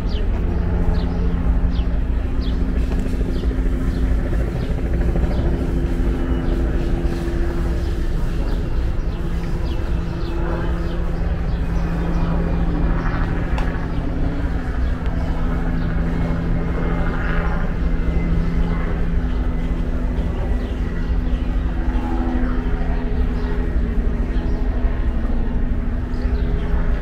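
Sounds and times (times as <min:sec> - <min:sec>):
distant engines droning: 0:00.0 - 0:27.0.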